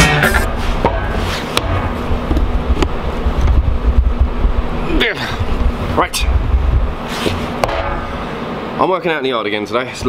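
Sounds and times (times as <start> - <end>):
faint steady hum: 0.0 - 10.0
wind buffeting microphone: 1.8 - 8.2.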